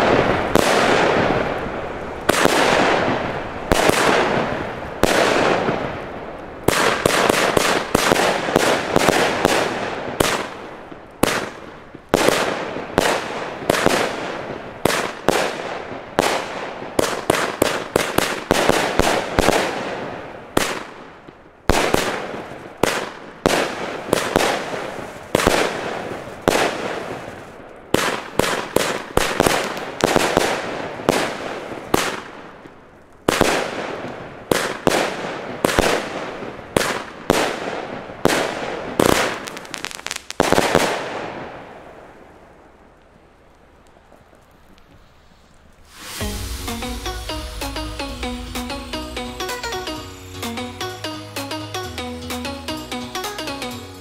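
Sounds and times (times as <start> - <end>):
firework bangs with echo: 0.0 - 6.0, 6.6 - 41.7.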